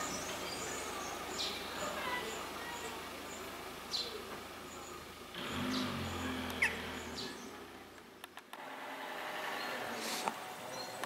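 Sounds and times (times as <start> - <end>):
bird chirp: 0.0 - 8.3, 10.7 - 11.0.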